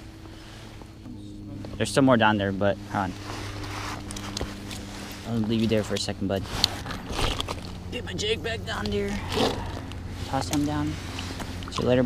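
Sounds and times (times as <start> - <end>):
rustle of clothing and gear: 0.4 - 9.1.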